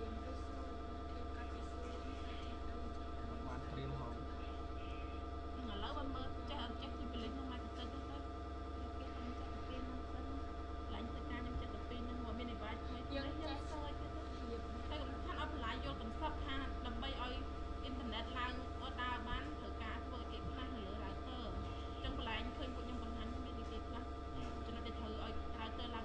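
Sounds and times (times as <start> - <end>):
faint indistinct voices: 0.0 - 26.0
steady low hum: 0.0 - 26.0.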